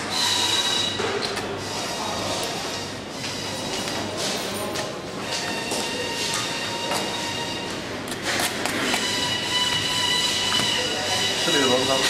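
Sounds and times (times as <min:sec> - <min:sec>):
machine hum with high whine: 0:00.0 - 0:12.0.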